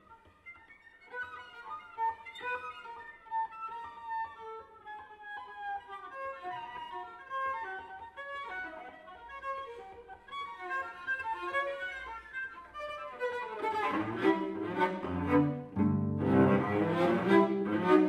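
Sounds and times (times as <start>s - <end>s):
cello bowing short notes: 14.1s - 18.0s.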